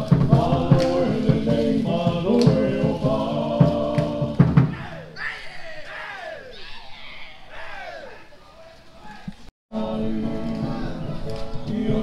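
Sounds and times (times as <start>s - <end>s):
people shouting long calls: 4.7s - 9.4s.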